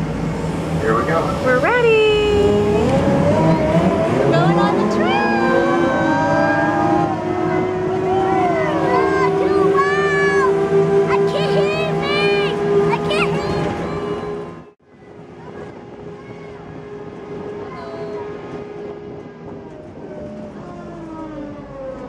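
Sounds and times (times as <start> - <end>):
voices: 0.8 - 18.7.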